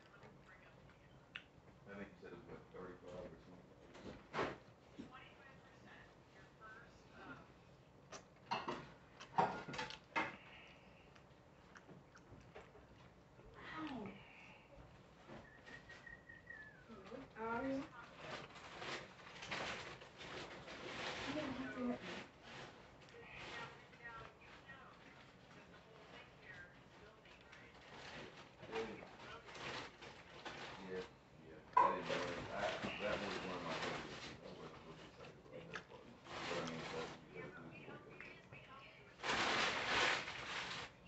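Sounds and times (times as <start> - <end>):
indistinct background voices: 31.8 - 38.8.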